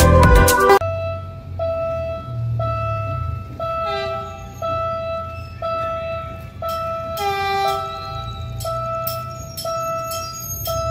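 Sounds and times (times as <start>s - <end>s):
level crossing warning ding: 0.8s - 10.9s.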